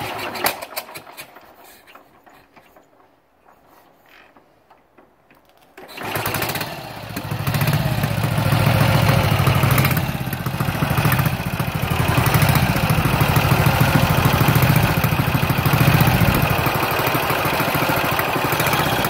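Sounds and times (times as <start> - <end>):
motorcycle engine starting and revving: 0.0 - 1.4, 5.8 - 19.0.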